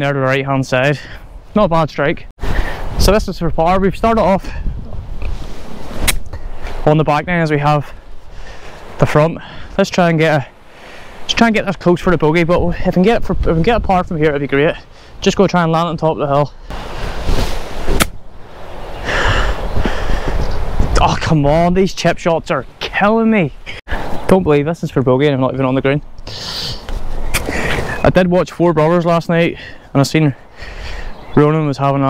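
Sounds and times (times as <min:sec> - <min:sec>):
golf club swish: 0:05.2 - 0:06.4, 0:16.7 - 0:18.3
golf club striking ball: 0:17.9 - 0:18.2.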